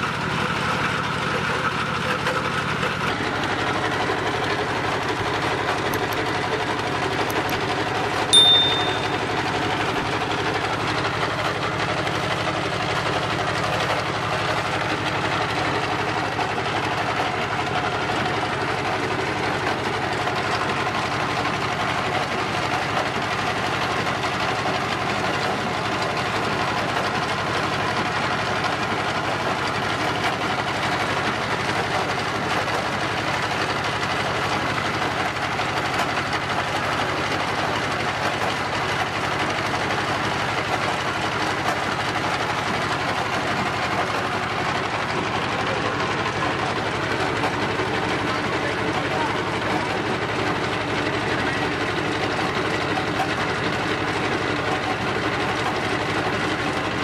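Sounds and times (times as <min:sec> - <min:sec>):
oil expeller running: 0:00.0 - 0:57.0
sharp ringing clink: 0:08.4 - 0:09.4.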